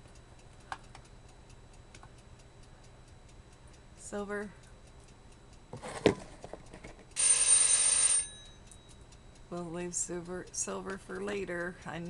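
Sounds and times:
faint regular ticking: 0.0s - 12.0s
bell ringing: 7.2s - 9.0s.

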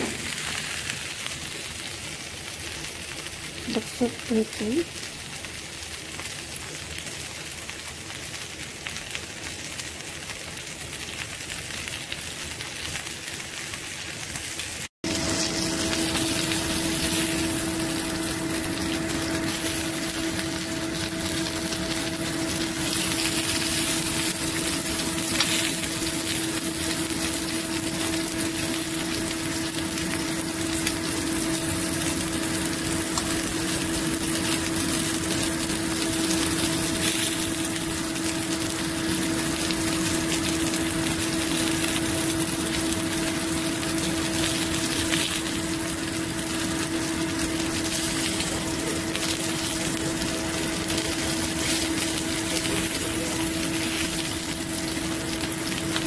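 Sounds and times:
low mechanical hum: 0.0s - 7.0s, 15.0s - 56.0s
meat sizzling on a grill: 0.0s - 56.0s.

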